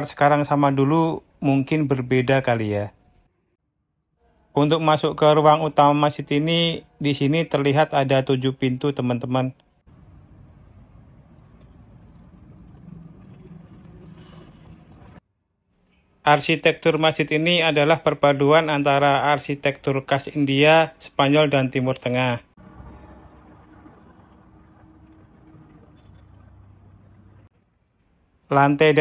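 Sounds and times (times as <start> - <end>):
faint hum: 9.5 - 15.2, 22.4 - 28.4
low steady rumble: 9.9 - 15.2, 22.6 - 27.5.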